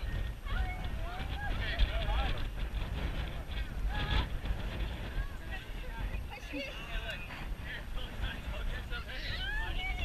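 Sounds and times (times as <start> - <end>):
people shouting and chattering: 0.0 - 10.0
wind on microphone: 0.0 - 10.0.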